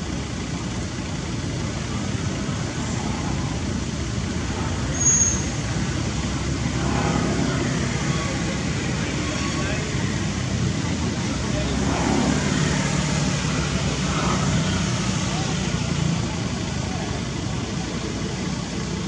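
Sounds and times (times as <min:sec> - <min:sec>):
distant road traffic rumble: 0:00.0 - 0:19.0
faint voices: 0:00.0 - 0:19.0
high-pitched squeak: 0:04.9 - 0:05.6.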